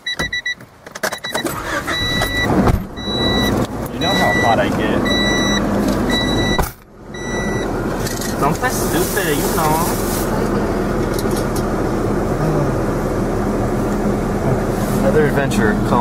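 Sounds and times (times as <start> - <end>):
car warning chime beeping: 0.0 - 7.8
car engine and road noise: 0.0 - 16.0.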